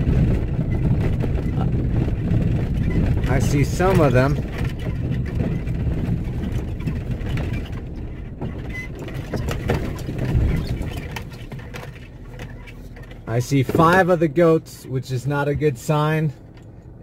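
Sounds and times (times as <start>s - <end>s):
bumps and rattles: 0.0s - 17.0s
engine and tyre rumble: 0.0s - 17.0s.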